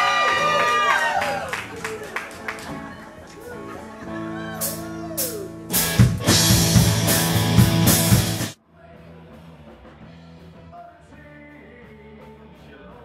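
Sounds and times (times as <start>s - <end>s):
rock band playing loudly: 3.4s - 12.6s.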